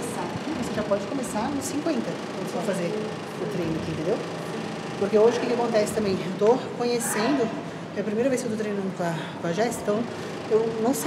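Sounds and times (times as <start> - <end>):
woman talking: 0.0 - 4.3, 5.0 - 11.0.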